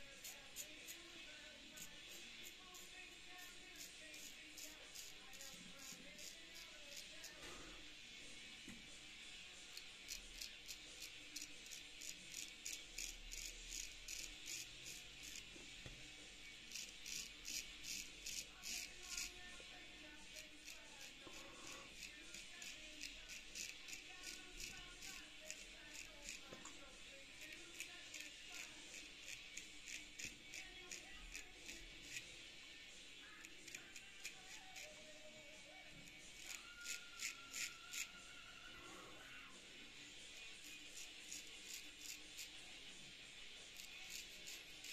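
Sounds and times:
razor scraping stubble: 0.0s - 7.8s, 9.5s - 38.3s, 40.0s - 44.9s.

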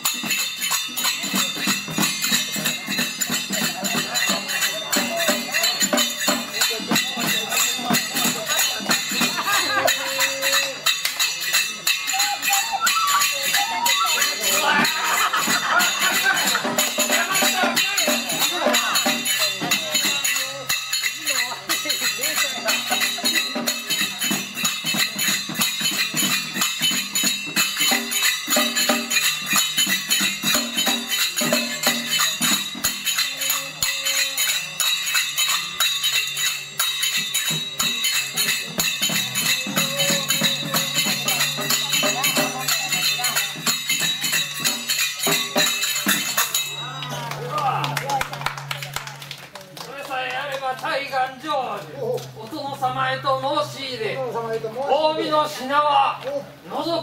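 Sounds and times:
low percussion tones: 0.0s - 57.0s
metallic jingling percussion: 0.0s - 57.0s.

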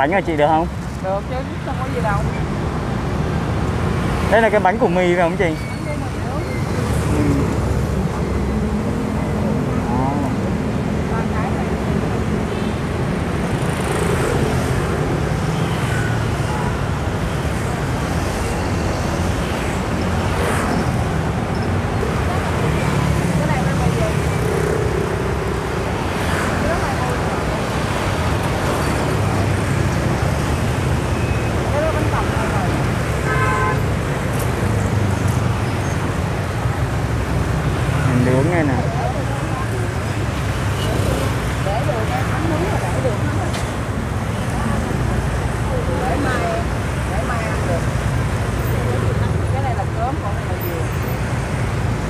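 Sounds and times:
motorbikes passing close by: 13.3s - 33.3s.

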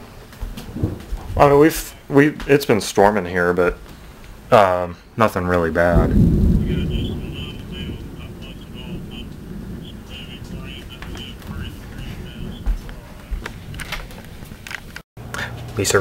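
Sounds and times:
low rumble of thunderstorm: 0.6s - 2.1s, 5.7s - 14.6s.

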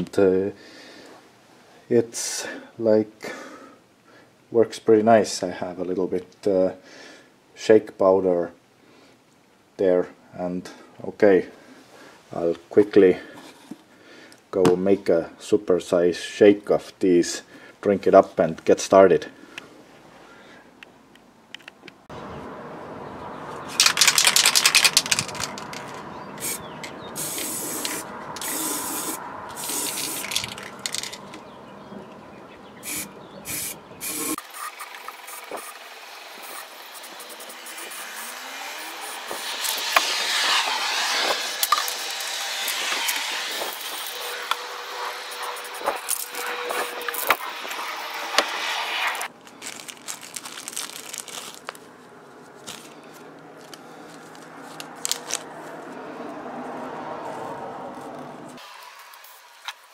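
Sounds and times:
spray paint can hissing: 23.8s - 31.3s, 32.8s - 49.3s.

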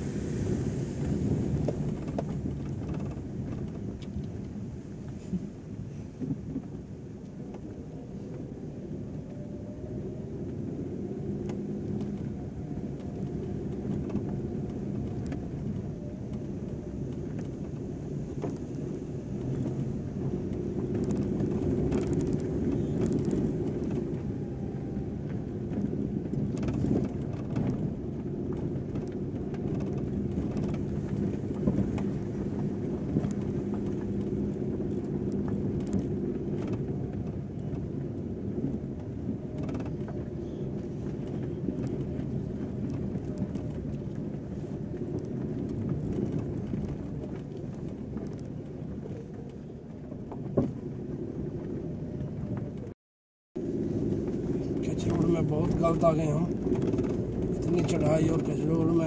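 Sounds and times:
vehicle engine pulling under load: 0.0s - 52.9s, 53.6s - 59.0s.

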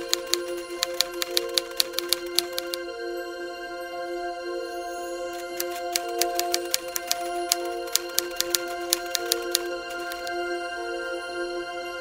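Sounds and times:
typewriter key clicks: 0.0s - 2.8s, 5.4s - 10.4s
soft background music: 0.0s - 12.0s.

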